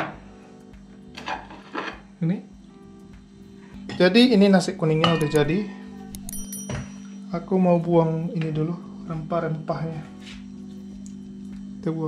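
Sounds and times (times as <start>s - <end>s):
soft background music: 0.0s - 12.0s
steady low hum: 2.0s - 12.0s.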